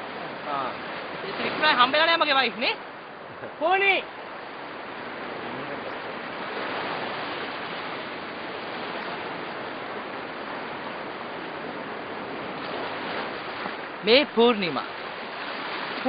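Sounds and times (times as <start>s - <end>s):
sea surf washing on shore: 0.0s - 16.0s.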